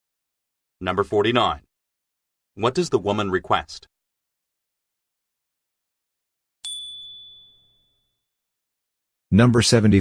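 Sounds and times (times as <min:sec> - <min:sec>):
bright ding chime: 0:06.6 - 0:08.2.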